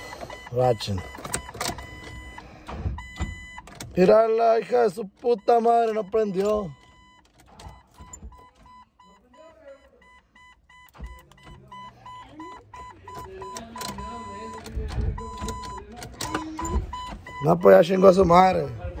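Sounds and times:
electronic warning chime beeping: 0:00.0 - 0:18.3.

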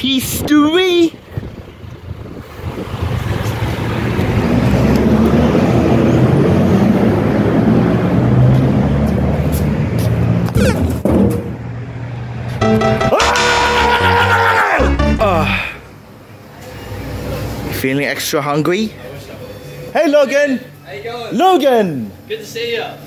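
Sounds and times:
road traffic passing: 0:00.0 - 0:23.0.

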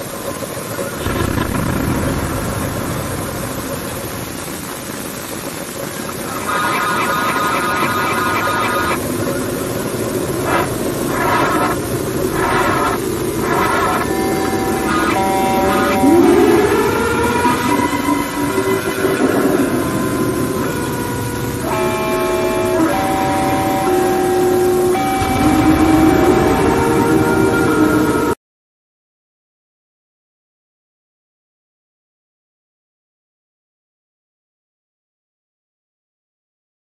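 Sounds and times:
distorted overlapping steady tones: 0:00.0 - 0:28.4
noise: 0:00.0 - 0:28.4
rising tone glide: 0:06.3 - 0:28.4.

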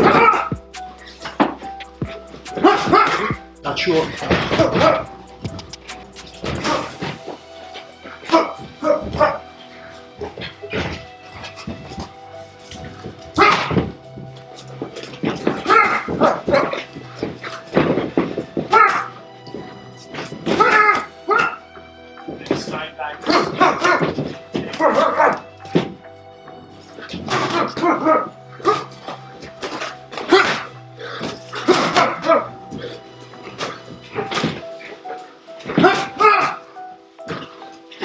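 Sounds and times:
boxers grunting: 0:00.0 - 0:01.4, 0:02.1 - 0:03.4, 0:04.0 - 0:05.2, 0:06.4 - 0:12.0, 0:13.4 - 0:14.0, 0:15.0 - 0:21.6, 0:23.2 - 0:25.4, 0:27.2 - 0:35.0, 0:35.6 - 0:36.7
background music: 0:00.0 - 0:38.0.

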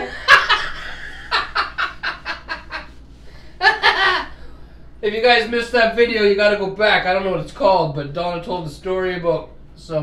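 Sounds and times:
hearty laughter: 0:00.0 - 0:03.0, 0:03.6 - 0:04.4.

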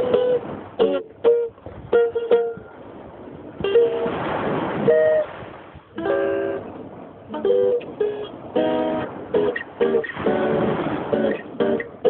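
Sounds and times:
acoustic guitar plucked notes: 0:00.0 - 0:12.0.

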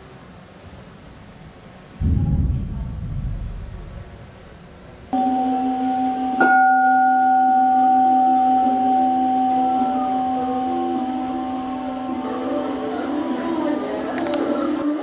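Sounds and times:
temple bell ringing: 0:05.2 - 0:13.6.

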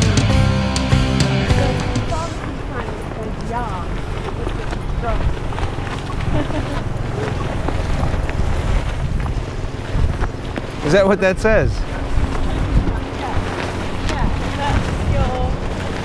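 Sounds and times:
wind buffeting microphone: 0:01.4 - 0:16.0.

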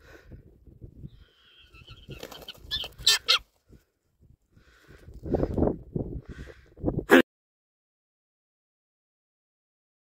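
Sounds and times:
harsh bird calls: 0:01.2 - 0:03.4
eagle wingbeats: 0:01.2 - 0:03.8.

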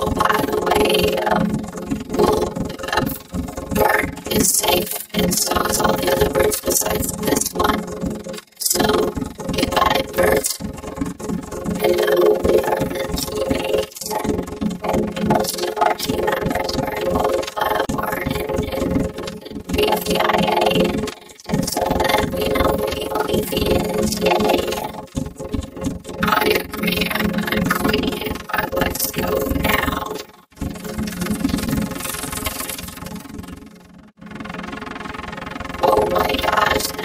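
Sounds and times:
cartoon voice clips: 0:08.6 - 0:10.6.

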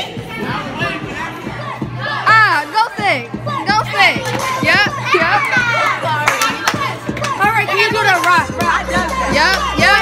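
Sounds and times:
loud music: 0:00.0 - 0:10.0
teenagers shouting excitedly: 0:00.0 - 0:10.0.

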